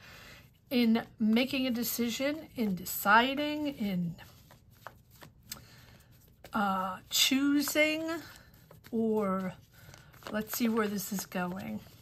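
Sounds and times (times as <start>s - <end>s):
cards clicking and rustling: 3.6s - 12.0s.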